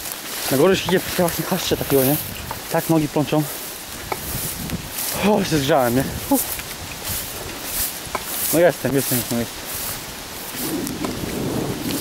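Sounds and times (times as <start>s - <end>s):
rustling leaves and branches: 0.0s - 12.0s
microphone handling rumble: 0.6s - 12.0s.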